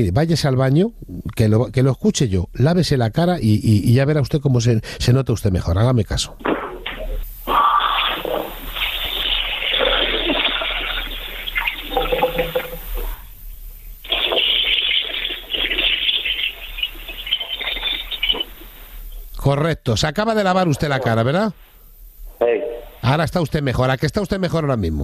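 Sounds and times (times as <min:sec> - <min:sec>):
water running from a tap: 0:08.7 - 0:13.0, 0:14.1 - 0:18.5.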